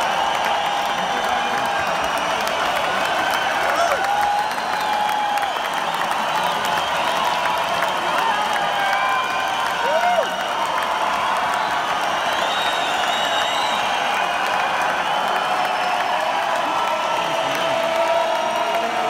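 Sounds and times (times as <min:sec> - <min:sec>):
crowd cheering and applauding: 0:00.0 - 0:19.0
shouts and whoops: 0:00.0 - 0:19.0.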